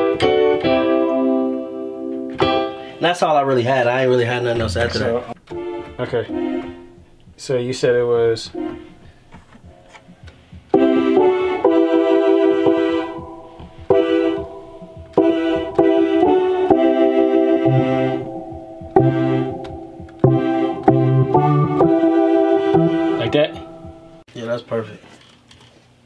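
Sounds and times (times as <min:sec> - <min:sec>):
electronic organ chords: 0:00.0 - 0:03.0, 0:04.7 - 0:24.3
organ bass notes: 0:04.4 - 0:24.3.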